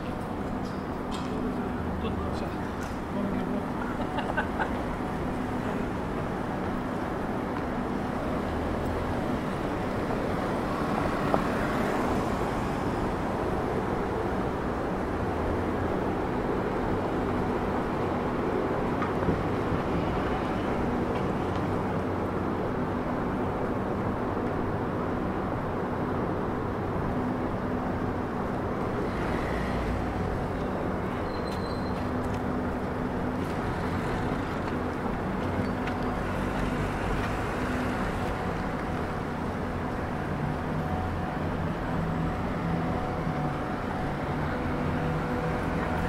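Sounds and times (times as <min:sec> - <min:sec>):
cars passing: 0:00.0 - 0:46.0.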